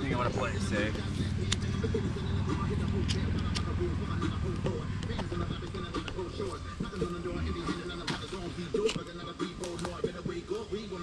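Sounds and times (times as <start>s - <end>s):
muffled voices: 0.0s - 11.0s.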